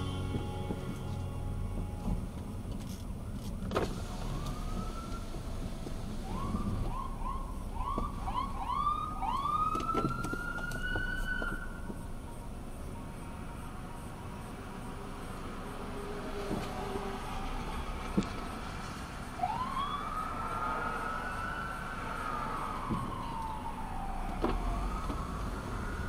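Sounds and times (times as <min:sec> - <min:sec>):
car engine low rumble: 0:00.0 - 0:26.0.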